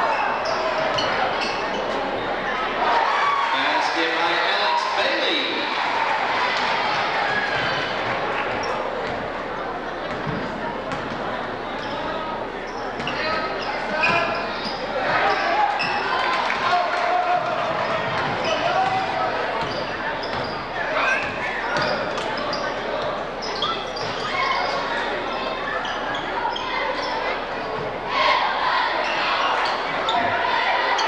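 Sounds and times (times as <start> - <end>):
sneakers squeaking: 0.0 - 31.0
basketball bouncing: 10.1 - 11.3, 17.4 - 20.6, 21.2 - 22.3.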